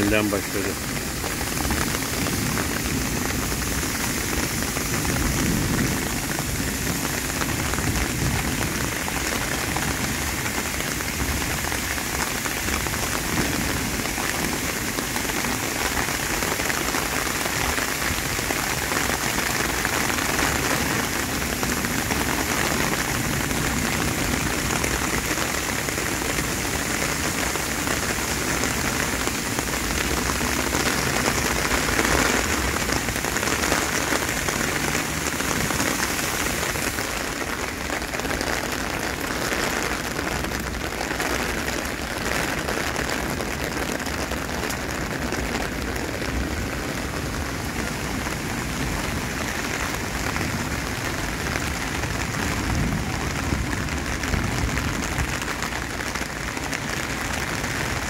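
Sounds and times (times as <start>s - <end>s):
heavy rain hissing: 0.0s - 58.0s.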